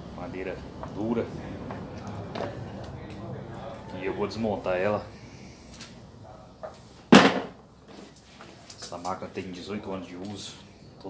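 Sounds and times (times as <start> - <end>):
sharp knock of hard object: 7.1 - 7.5.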